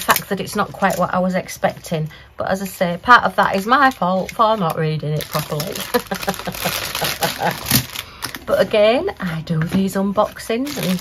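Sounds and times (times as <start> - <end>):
plastic bags crinkling: 3.4 - 9.3, 10.4 - 11.0.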